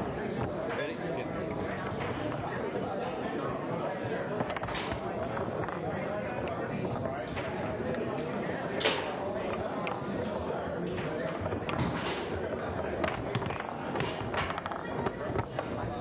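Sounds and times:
murmur of voices: 0.0s - 16.0s
foosball ball clacks: 4.3s - 16.0s
foosball rods knocking: 4.4s - 8.1s, 10.9s - 16.0s.

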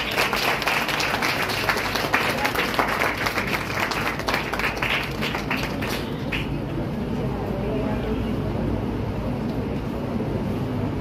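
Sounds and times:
low rumble of hall room noise: 0.0s - 11.0s.

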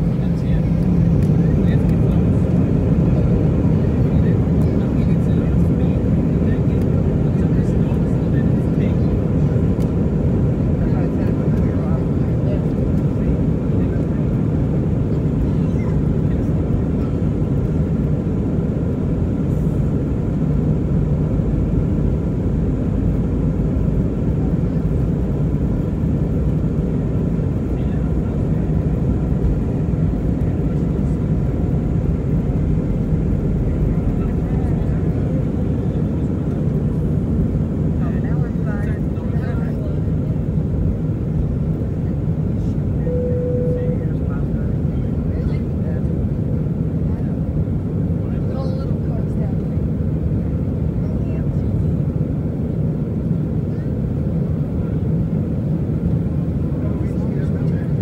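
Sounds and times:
jet engines rumbling: 0.0s - 58.0s.

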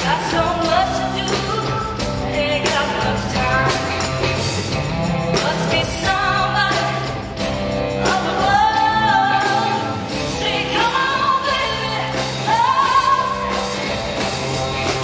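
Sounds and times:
woman singing into a microphone: 0.0s - 4.1s, 5.3s - 7.4s, 8.0s - 13.8s
band accompaniment: 0.0s - 15.0s.

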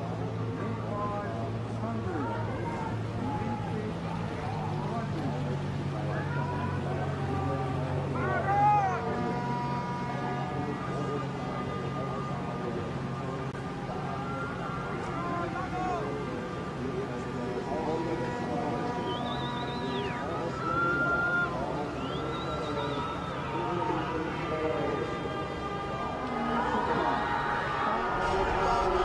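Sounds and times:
indistinct voices: 0.0s - 29.0s.

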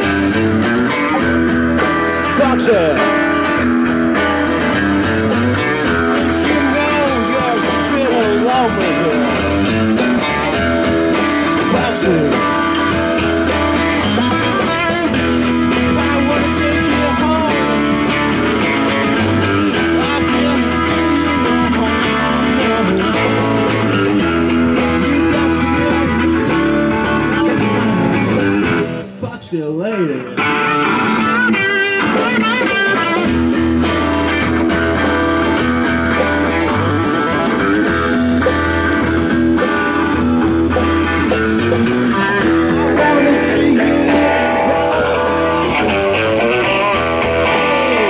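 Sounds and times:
electric guitar bending notes: 0.0s - 29.2s, 29.9s - 48.0s
blues-rock band playing: 0.0s - 48.0s.

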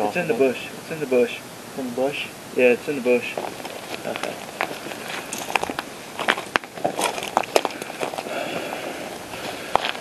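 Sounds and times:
footsteps crunching through dry leaves: 3.2s - 10.0s.

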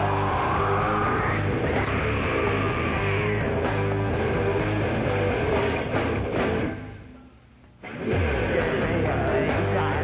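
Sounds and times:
rock band playing live: 0.0s - 6.9s, 7.8s - 10.0s.

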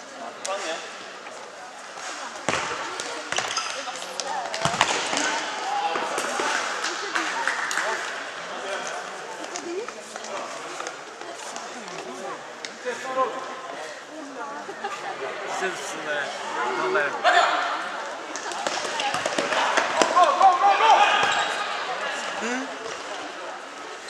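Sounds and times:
spectators shouting: 19.4s - 22.2s.

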